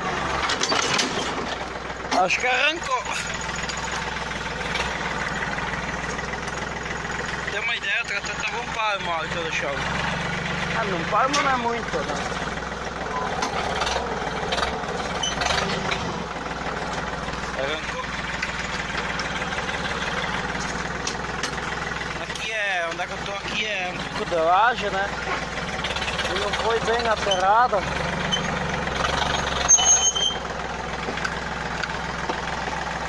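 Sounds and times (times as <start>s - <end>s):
diesel tractor engine running: 0.0s - 33.0s
sharp knocks and clanks: 0.3s - 7.4s, 13.2s - 23.3s.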